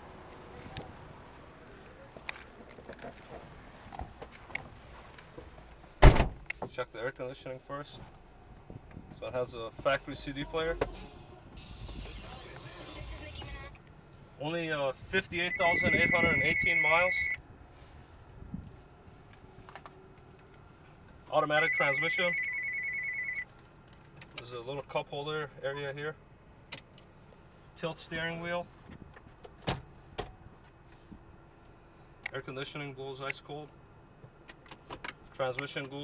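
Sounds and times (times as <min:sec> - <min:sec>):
air hissing from car vents: 0:10.9 - 0:14.2.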